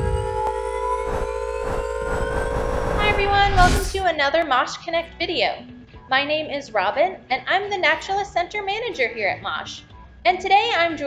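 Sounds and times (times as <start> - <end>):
held synthesizer chord: 0.0 - 4.0
deep steady rumble: 0.0 - 4.1
faint rising tones: 0.0 - 4.1.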